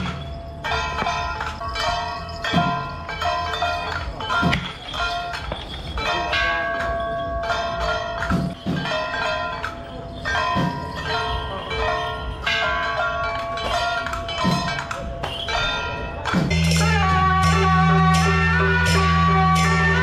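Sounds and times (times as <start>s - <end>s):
ringing metal percussion: 0.0s - 20.0s.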